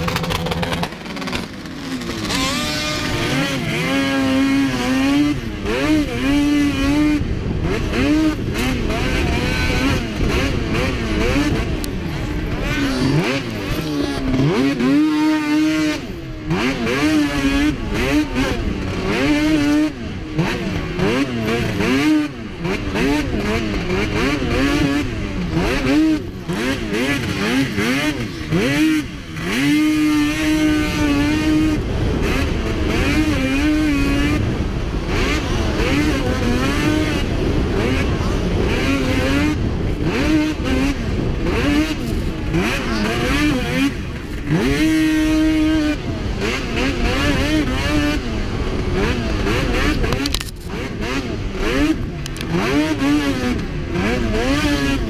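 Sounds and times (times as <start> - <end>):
snowmobile engine revving hard: 0.0 - 55.0.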